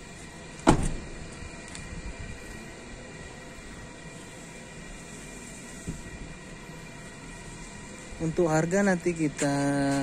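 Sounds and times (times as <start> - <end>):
car door shutting: 0.6 - 1.2.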